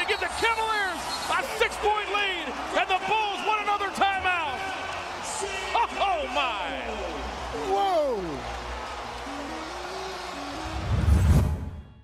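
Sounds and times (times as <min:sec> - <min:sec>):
man commentating excitedly: 0:00.0 - 0:08.5.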